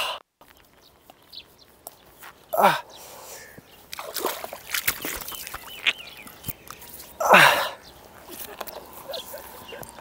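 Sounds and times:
water splashing on face: 0:03.9 - 0:06.0
man groaning: 0:07.2 - 0:07.8.

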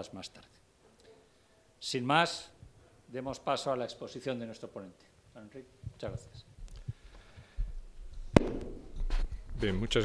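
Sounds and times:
sharp knock: 0:08.4 - 0:09.0.

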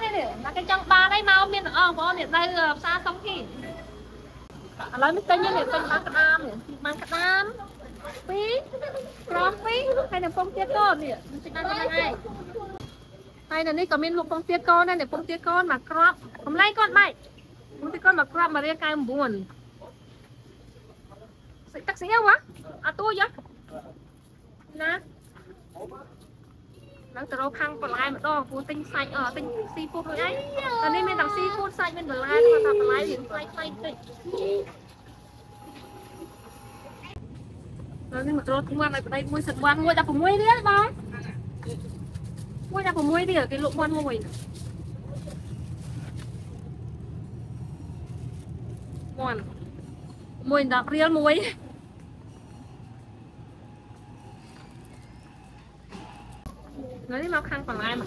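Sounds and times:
low steady hum: 0:00.0 - 0:58.0.

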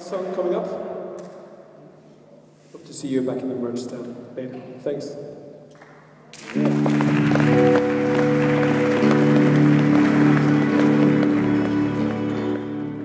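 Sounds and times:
audience applause: 0:06.3 - 0:13.0
rock band sustained chord: 0:06.5 - 0:13.0.

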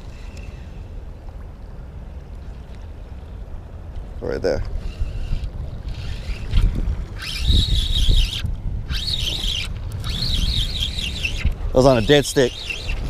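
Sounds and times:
wind rumbling on microphone: 0:00.0 - 0:13.0
fishing reel whirring: 0:04.8 - 0:13.0.

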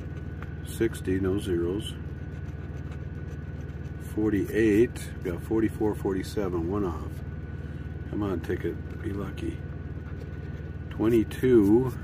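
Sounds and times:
engine idling hum: 0:00.0 - 0:12.0.

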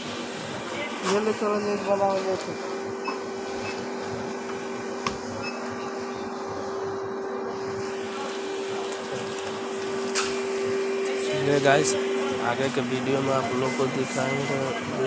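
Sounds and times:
freezer refrigeration hum: 0:00.0 - 0:15.0.

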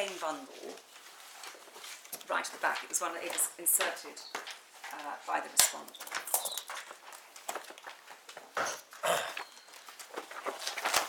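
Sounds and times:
pages turning: 0:00.0 - 0:05.1, 0:05.9 - 0:11.0
papers rustling: 0:00.0 - 0:11.0.

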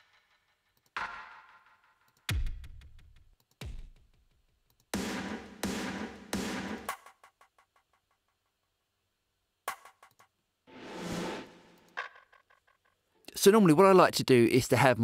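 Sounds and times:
distorted snare hits with echoes: 0:05.0 - 0:07.0.

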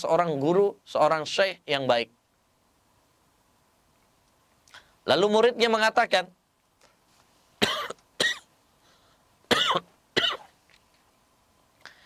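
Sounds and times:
man coughing: 0:07.6 - 0:08.5, 0:09.5 - 0:10.5.

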